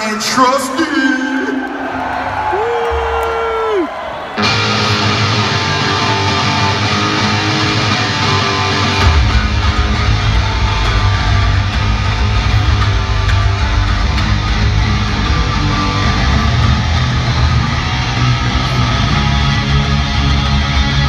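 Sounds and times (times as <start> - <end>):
punk rock guitar and bass: 4.4 - 21.0.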